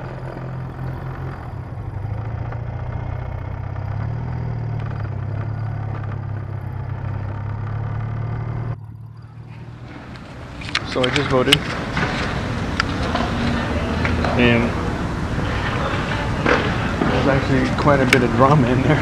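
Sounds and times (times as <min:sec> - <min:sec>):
motorcycle engine droning: 0:00.0 - 0:19.0.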